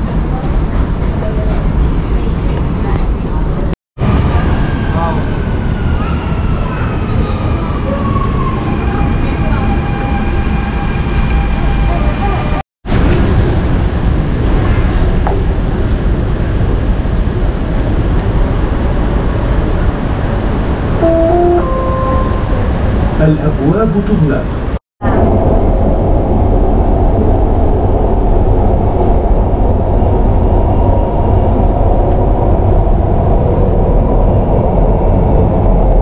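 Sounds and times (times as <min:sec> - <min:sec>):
heavy train rumble: 0:00.0 - 0:36.0
train running inside carriage: 0:00.0 - 0:36.0
two-note rising chime: 0:21.0 - 0:23.0.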